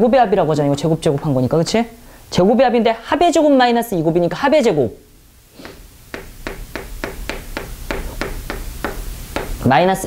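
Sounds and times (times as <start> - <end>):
chalk tapping on blackboard: 5.6 - 9.7.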